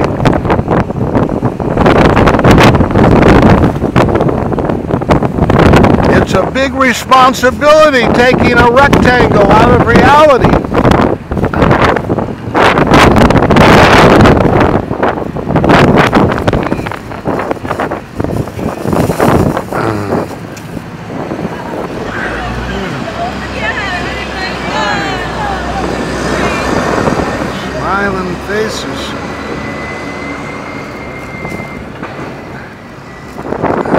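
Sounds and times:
street traffic engine rumble: 0.0 - 33.9
wind on microphone: 0.0 - 33.9
microphone handling noise: 10.5 - 21.4.

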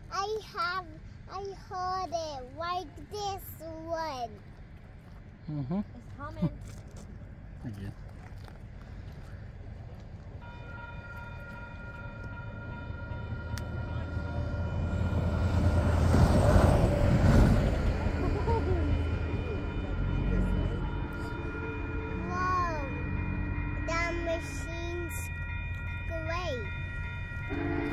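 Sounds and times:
train rushing with low rumble: 6.0 - 27.9
railroad crossing bell ringing: 10.4 - 27.9.

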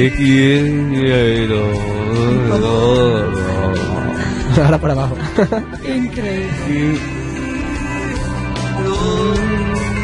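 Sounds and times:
young man singing held note: 0.0 - 4.2.

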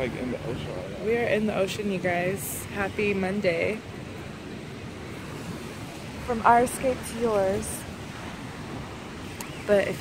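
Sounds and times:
ocean surf on rocks: 0.0 - 10.0
wind on microphone: 0.8 - 10.0.

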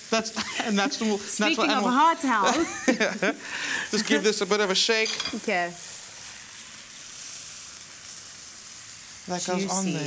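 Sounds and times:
food sizzling in a frying pan: 0.0 - 10.0.

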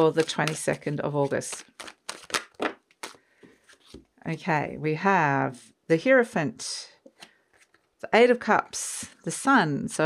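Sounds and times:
cards being shuffled: 0.0 - 4.1.

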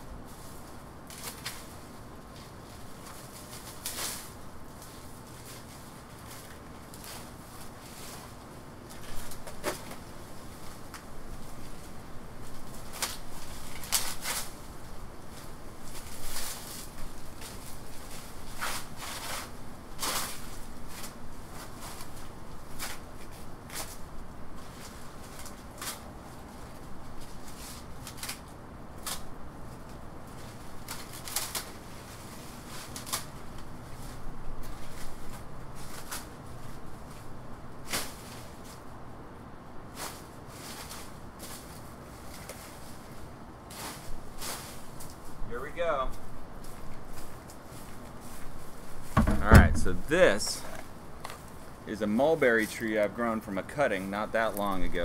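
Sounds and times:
dry leaves crackling and rustling: 0.2 - 39.2, 39.8 - 55.0.

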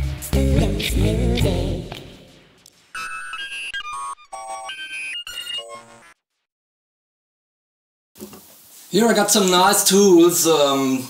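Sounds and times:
sung intro music: 0.0 - 2.6
beeping synthesizer melody: 3.0 - 6.2.

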